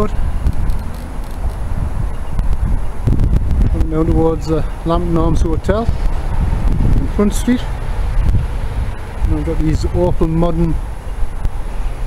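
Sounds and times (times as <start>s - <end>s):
street background noise: 0.0s - 12.0s
wind rumble on microphone: 0.0s - 12.0s.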